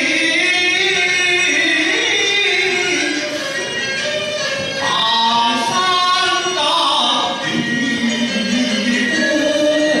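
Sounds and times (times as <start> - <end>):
man singing opera: 0.0 - 2.9, 4.8 - 10.0.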